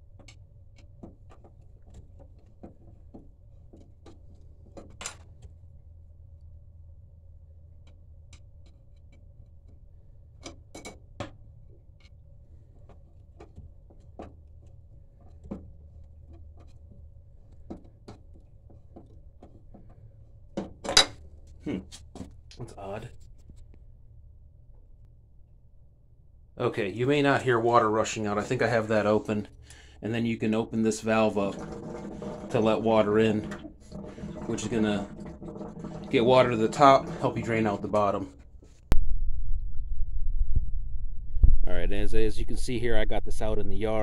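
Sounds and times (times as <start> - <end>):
low hum: 5.4 - 17.6, 20.1 - 30.0, 31.1 - 44.0.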